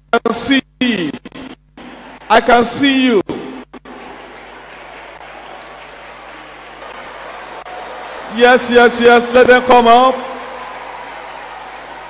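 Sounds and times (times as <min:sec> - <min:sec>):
preacher's voice: 0:00.1 - 0:01.4, 0:02.3 - 0:03.4, 0:08.2 - 0:10.5
crowd applauding and calling out: 0:01.8 - 0:02.5, 0:03.4 - 0:12.0.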